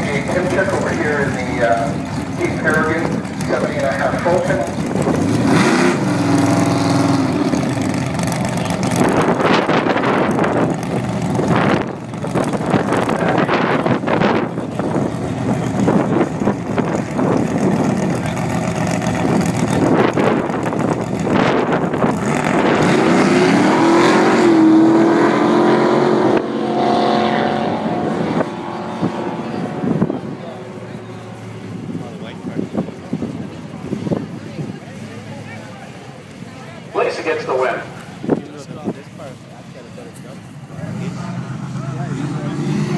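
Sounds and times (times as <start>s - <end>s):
engine revving up: 0.0s - 16.2s, 17.2s - 32.7s, 40.7s - 42.9s
rough race car engine noise: 0.0s - 42.9s.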